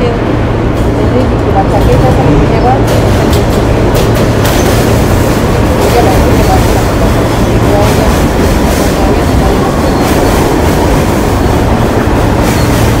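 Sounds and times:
subway train wheels rumbling: 0.0s - 13.0s.

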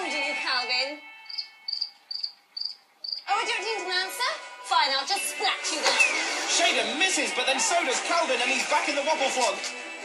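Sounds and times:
cricket chirping: 1.2s - 3.2s.

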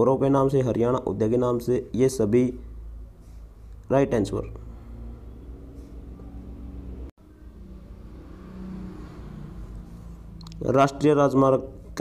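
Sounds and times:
faint hum: 1.8s - 10.6s.

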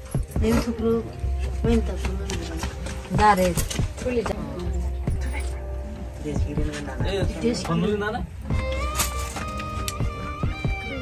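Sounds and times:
low bass: 0.0s - 11.0s.

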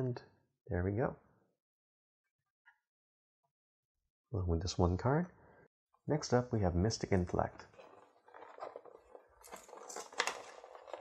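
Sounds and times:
cardboard box rustling and scraping: 7.8s - 11.0s.

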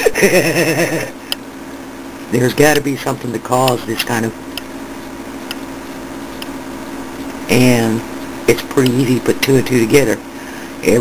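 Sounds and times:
man laughing: 0.0s - 1.2s
faint steady hum: 0.0s - 11.0s.

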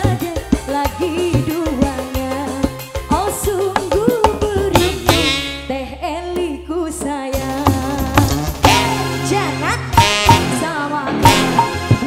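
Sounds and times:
steady bass: 0.0s - 12.0s
drum strokes: 0.5s - 5.6s, 7.4s - 9.0s, 10.0s - 12.0s.

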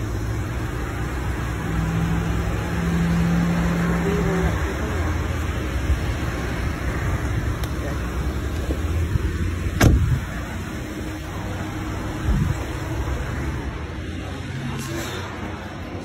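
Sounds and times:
car door shutting: 9.8s - 10.2s.

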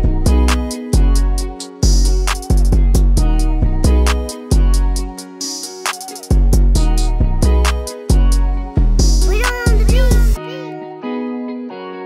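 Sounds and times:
hi-hats: 0.3s - 10.4s.

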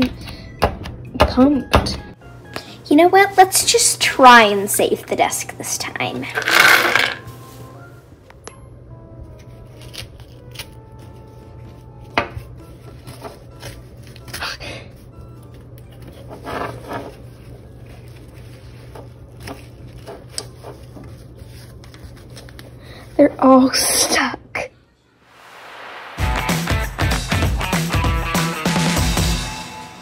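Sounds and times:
paper towel peeled off shells: 15.5s - 22.8s.

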